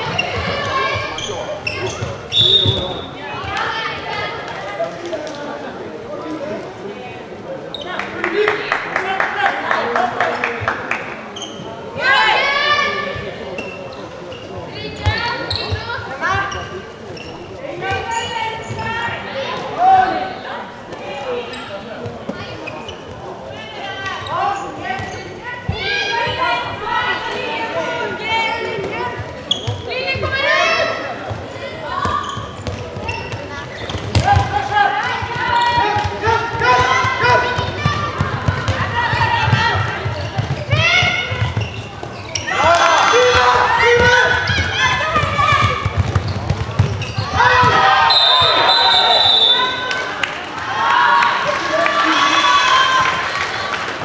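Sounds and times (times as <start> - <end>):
players calling out: 23.6 - 54.0
ball bouncing on hall floor: 35.2 - 47.8.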